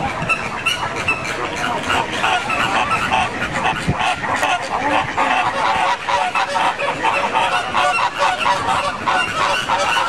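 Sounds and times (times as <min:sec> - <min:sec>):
flamingos honking: 0:00.0 - 0:10.0.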